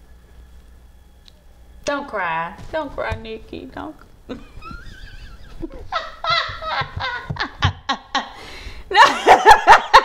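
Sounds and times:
woman laughing: 4.3 - 10.0.

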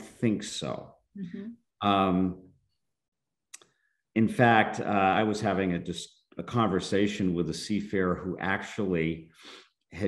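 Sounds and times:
man saying um: 0.0 - 0.8, 1.8 - 2.3
man speaking: 0.0 - 0.9, 1.8 - 2.4, 4.2 - 10.0.

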